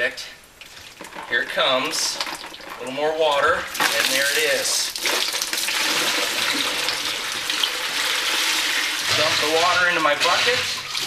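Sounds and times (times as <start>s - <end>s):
water pouring into a bucket: 0.6s - 11.0s.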